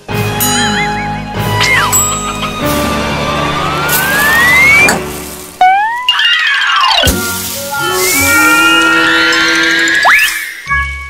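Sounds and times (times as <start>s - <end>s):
music: 0.0s - 11.0s
rising whistle glide: 3.2s - 5.0s, 7.8s - 10.7s.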